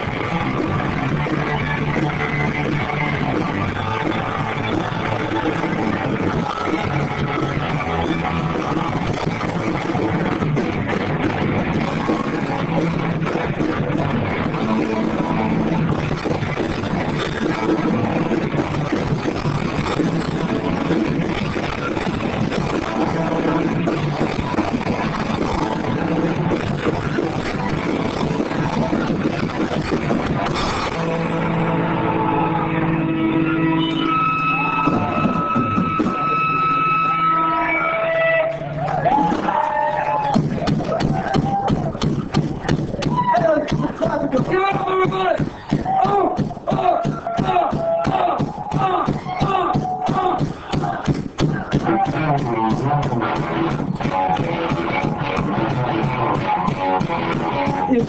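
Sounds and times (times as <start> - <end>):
distorted garage rock band: 0.0 - 58.0.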